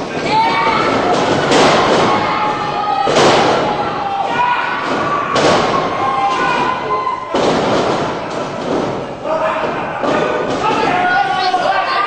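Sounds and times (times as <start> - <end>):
people shouting: 0.0 - 12.0
heavy thuds on wrestling ring: 0.1 - 11.1.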